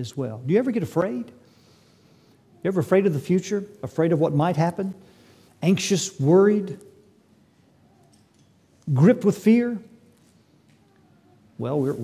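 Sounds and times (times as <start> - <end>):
man speaking: 0.0 - 1.4, 2.6 - 5.0, 5.6 - 7.0, 8.9 - 10.0, 11.6 - 12.0.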